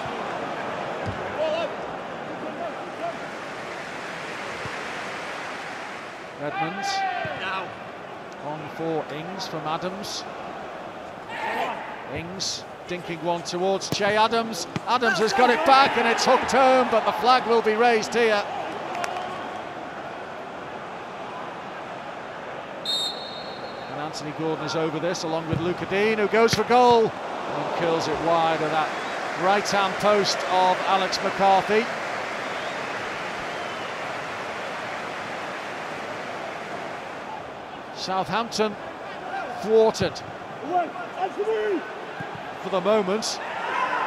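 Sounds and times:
footballers shouting: 6.4s - 44.0s
referee's whistle blast: 22.8s - 24.0s.

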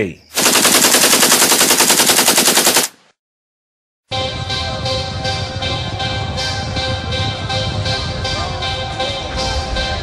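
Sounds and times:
rapid automatic gunfire: 0.4s - 3.0s.

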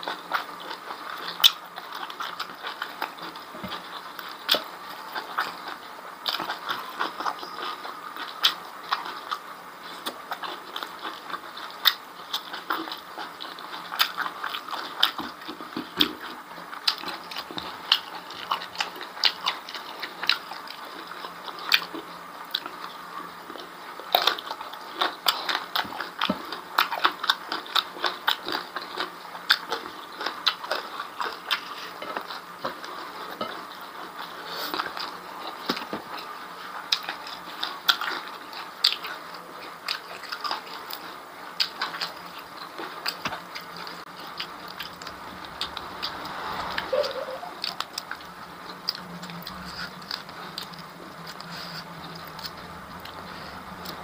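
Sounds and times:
wet chewing clicks and smacks: 0.0s - 46.8s, 47.6s - 54.0s.

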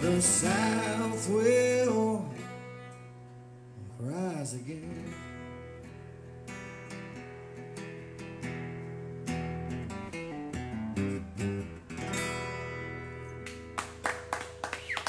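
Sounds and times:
man singing: 0.0s - 2.7s, 3.8s - 5.3s
acoustic guitar strumming: 0.0s - 14.6s.

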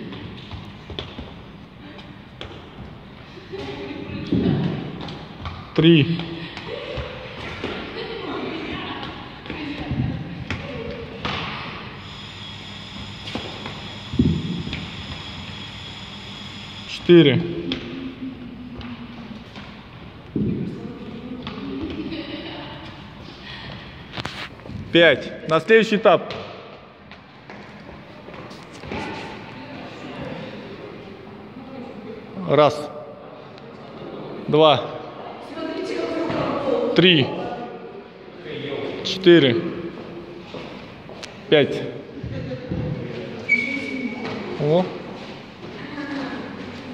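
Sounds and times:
footsteps on gym floor: 0.0s - 8.0s, 26.2s - 29.6s.

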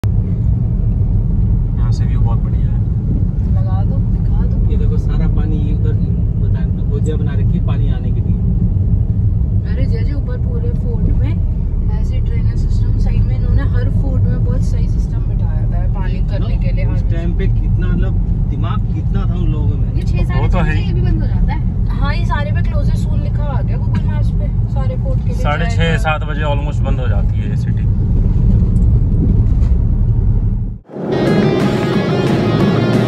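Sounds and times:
car cabin road rumble: 0.0s - 33.0s.

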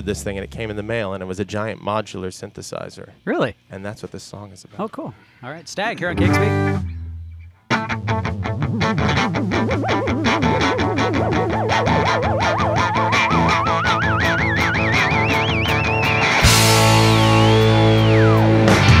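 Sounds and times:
rapidly picked electric guitar: 6.1s - 19.0s
rock band with drums and cymbals: 7.8s - 19.0s
wavering tone climbing in pitch: 8.4s - 18.4s.

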